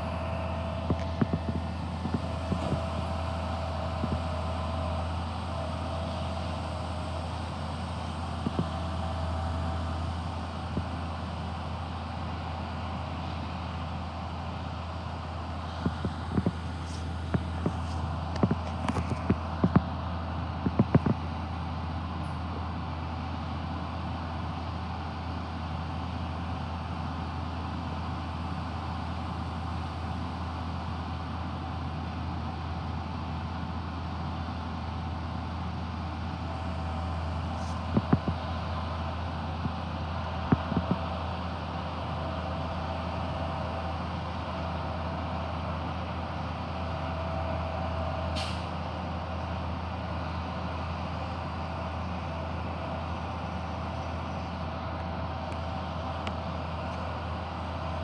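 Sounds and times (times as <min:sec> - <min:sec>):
thin steady hydraulic whine: 0:00.0 - 0:22.7
distant diesel truck engine: 0:00.0 - 0:58.0.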